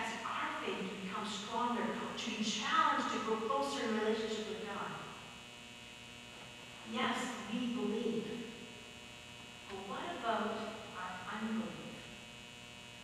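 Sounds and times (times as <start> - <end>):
electrical mains hum: 0.0 - 13.0
person speaking: 6.8 - 8.6, 9.7 - 12.0.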